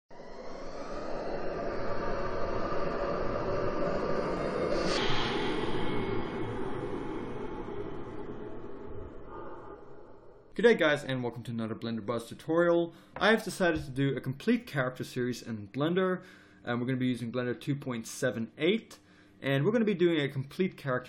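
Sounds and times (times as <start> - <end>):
dense rushing rumble: 0.1 - 10.5
faint high whine: 0.1 - 21.0.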